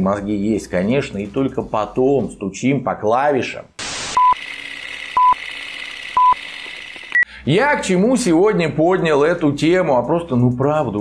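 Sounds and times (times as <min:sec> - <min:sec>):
short single-pitch beeps: 0:04.2 - 0:04.4, 0:05.2 - 0:05.4, 0:06.2 - 0:06.4.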